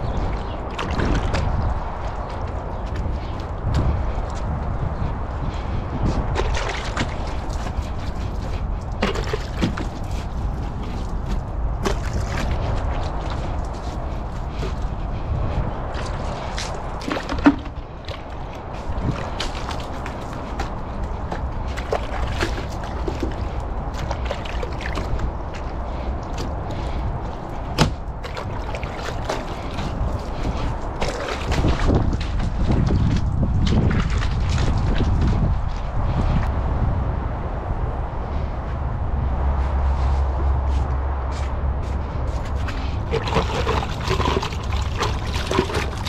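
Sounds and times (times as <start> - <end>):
water sloshing and dripping: 0.0 - 36.4, 42.3 - 46.0.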